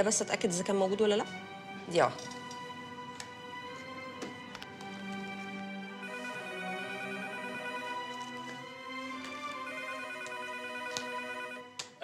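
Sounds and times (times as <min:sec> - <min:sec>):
background music: 0:00.0 - 0:12.0
desk phone ringing: 0:05.8 - 0:11.8.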